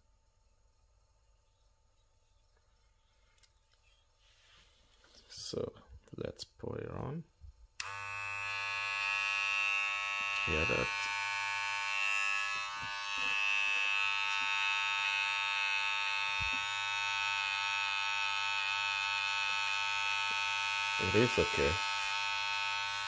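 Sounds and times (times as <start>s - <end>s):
hair trimmer buzzing: 7.8s - 23.0s.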